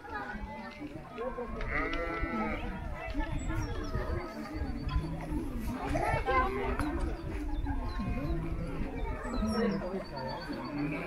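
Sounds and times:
people's voices in background: 0:00.0 - 0:11.0
sheep bleating: 0:01.6 - 0:02.7.

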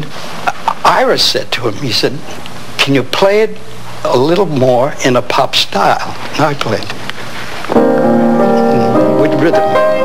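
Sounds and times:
piano playing: 0:07.7 - 0:10.0.

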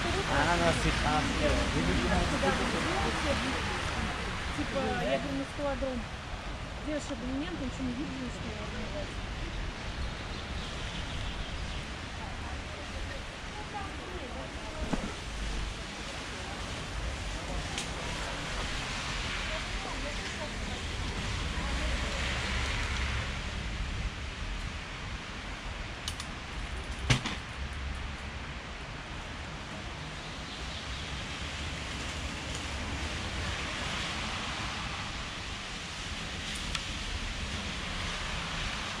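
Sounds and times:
faint clicks: 0:26.0 - 0:26.3.

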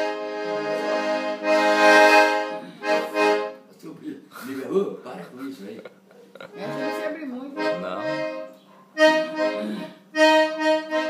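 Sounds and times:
piano accordion chords: 0:00.0 - 0:03.7, 0:06.5 - 0:11.0.

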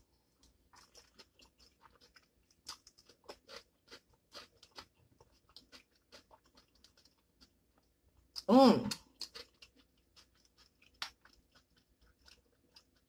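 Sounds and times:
chewing and mouth sounds: 0:00.2 - 0:13.0.

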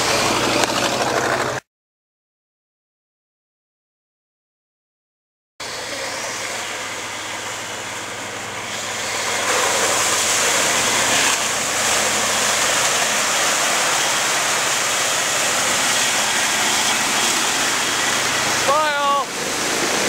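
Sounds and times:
pickup truck engine: 0:00.0 - 0:01.6, 0:05.6 - 0:20.0
tyres rushing through mud: 0:00.0 - 0:01.6, 0:05.6 - 0:20.0.

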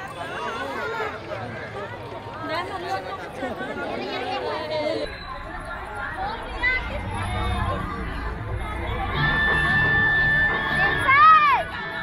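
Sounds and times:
faint crowd chatter: 0:00.0 - 0:12.0
people chatting close by: 0:00.0 - 0:12.0
low rumble: 0:05.0 - 0:11.9.

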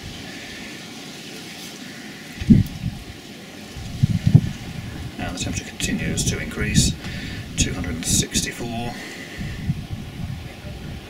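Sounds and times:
steady outdoor hiss: 0:00.0 - 0:11.0
wind buffeting microphone: 0:02.3 - 0:11.0.

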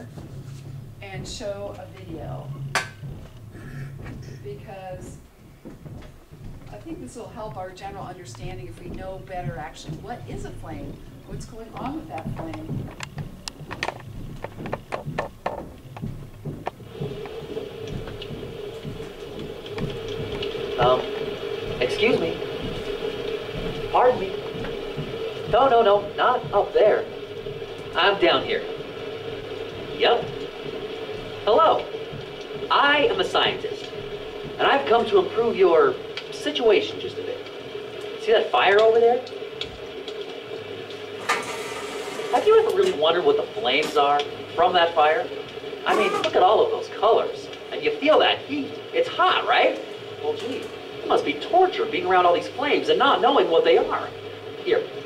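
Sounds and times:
fire crackling and hissing: 0:00.0 - 0:55.0
steady hum: 0:00.0 - 0:55.0
rapid clicks: 0:07.6 - 0:26.6.

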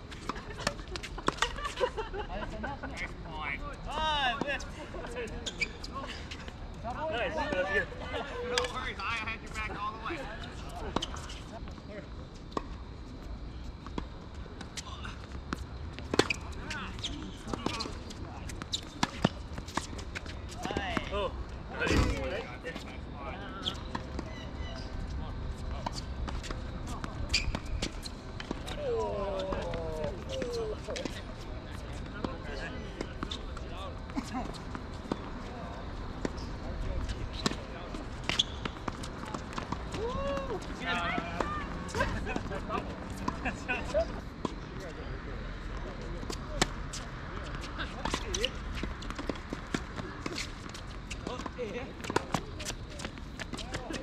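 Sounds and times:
players calling out: 0:28.3 - 0:54.0.

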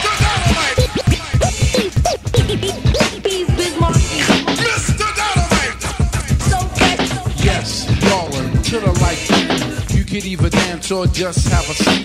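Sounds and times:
hip hop drum beat: 0:00.6 - 0:07.5, 0:08.1 - 0:12.0
record scratching on turntable: 0:00.8 - 0:04.1.

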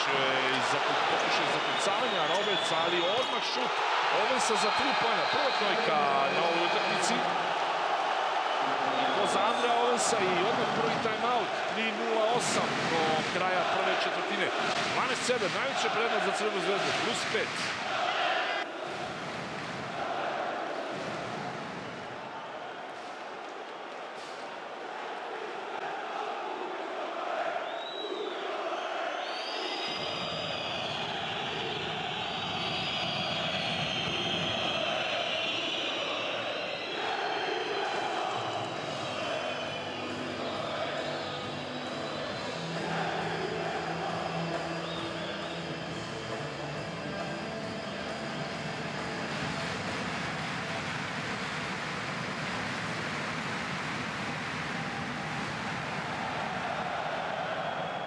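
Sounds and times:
arena crowd roaring: 0:00.0 - 0:58.0
shrill whistles: 0:01.4 - 0:07.0, 0:27.3 - 0:46.2
crowd chanting: 0:03.2 - 0:45.6, 0:56.0 - 0:58.0.

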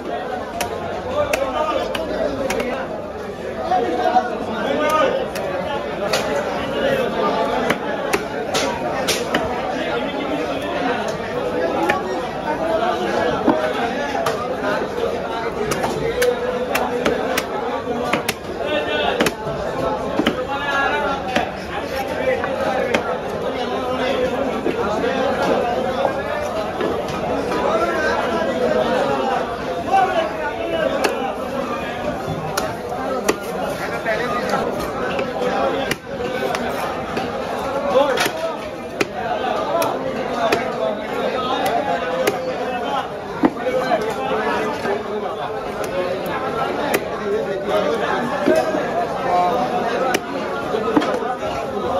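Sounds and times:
chatter of many voices: 0:00.0 - 0:51.9.

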